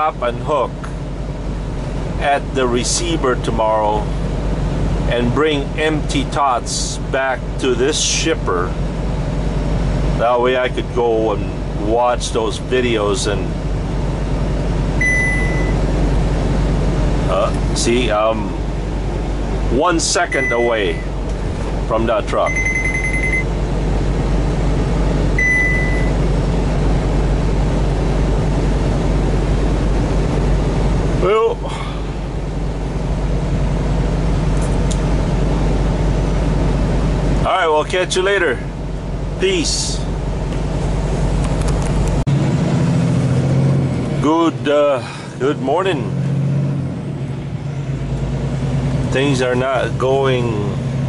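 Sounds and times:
road noise: 0.0 - 51.0
truck engine drone: 0.0 - 51.0
short electronic beep: 15.0 - 15.8, 20.3 - 21.1, 22.4 - 23.5, 25.4 - 26.2.

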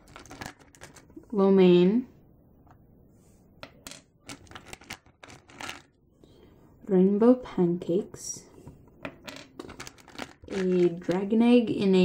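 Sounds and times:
clay charms clicking in plastic box: 3.9 - 5.9, 9.2 - 11.3.

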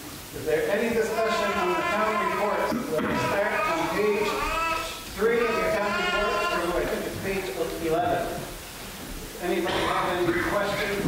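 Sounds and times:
person speaking: 0.4 - 11.0.

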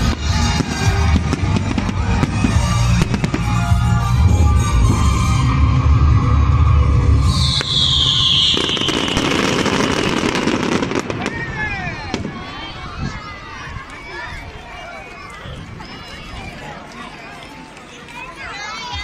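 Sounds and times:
fireworks bangs and crackles: 0.0 - 5.5, 7.0 - 12.7
loud music with heavy bass: 0.0 - 7.6
crowd voices: 0.0 - 19.0
high falling tone: 2.6 - 10.5.

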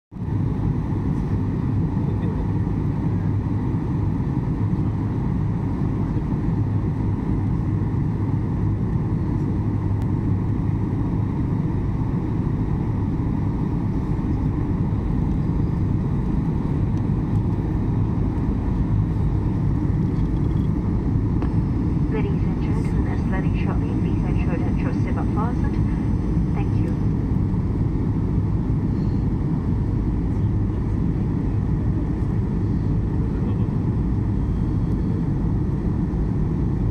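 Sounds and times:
jet airliner cabin roar: 0.2 - 36.9.

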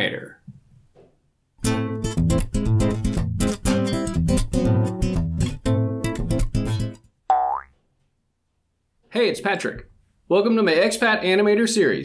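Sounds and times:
cartoon boing: 7.3 - 7.7.

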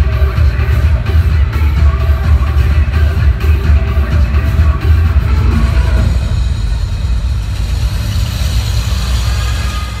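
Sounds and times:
low bass rumble: 4.3 - 9.9
noisy wash: 4.6 - 9.6.

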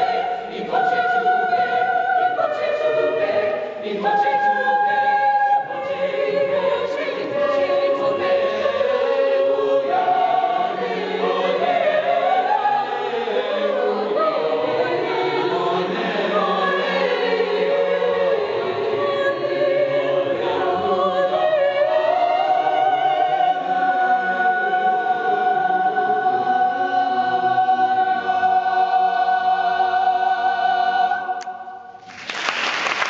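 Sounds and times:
choir singing in church: 0.0 - 33.0.

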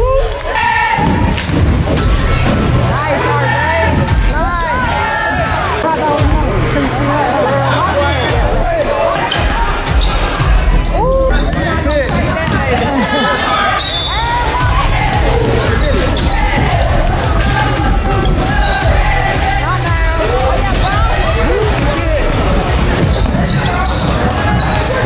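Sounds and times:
voices in a large hall: 0.0 - 25.0
music with bass line: 1.1 - 13.4, 14.2 - 25.0
sneakers squeaking: 4.1 - 25.0.

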